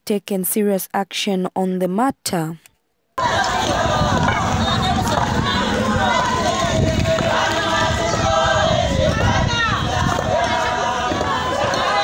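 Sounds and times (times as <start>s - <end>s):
crowd singing together: 3.2s - 12.0s.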